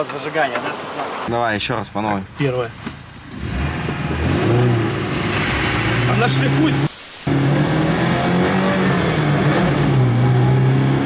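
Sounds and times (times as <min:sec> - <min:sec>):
car engine accelerating hard: 0:03.3 - 0:11.0.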